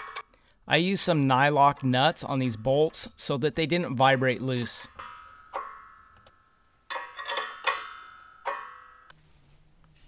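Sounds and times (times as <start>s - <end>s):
wrench knocking on metal: 6.9s - 9.1s.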